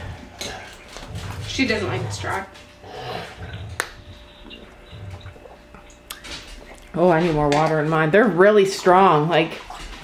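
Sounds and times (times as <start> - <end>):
faint liquid sounds: 0.0 - 10.0.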